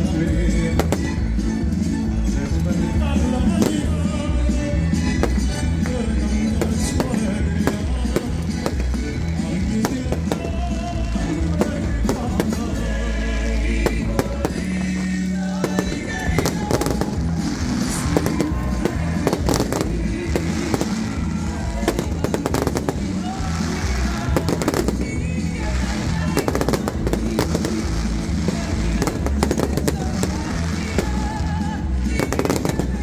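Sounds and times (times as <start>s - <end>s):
fireworks bursting and crackling: 0.0s - 33.0s
music: 0.0s - 33.0s.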